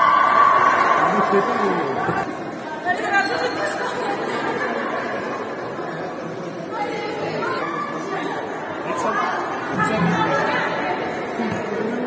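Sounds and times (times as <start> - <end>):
people talking at once: 0.7 - 12.0.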